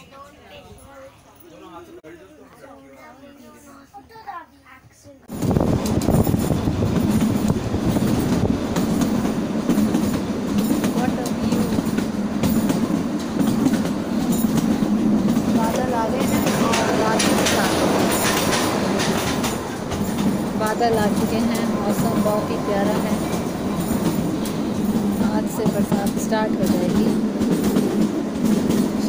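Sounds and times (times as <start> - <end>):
rumble of train wheels on rails: 5.3 - 29.0.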